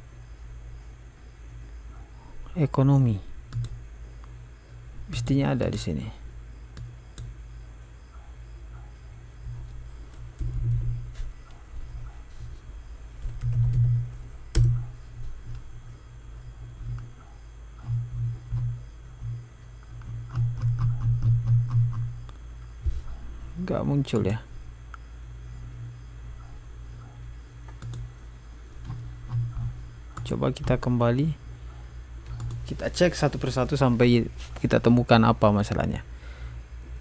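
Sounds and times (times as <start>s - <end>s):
low electrical hum: 0.0s - 37.0s
computer mouse clicks: 3.5s - 4.4s, 5.1s - 5.9s, 14.5s - 14.9s, 20.0s - 22.4s, 26.4s - 28.1s, 28.8s - 30.8s, 32.2s - 32.7s.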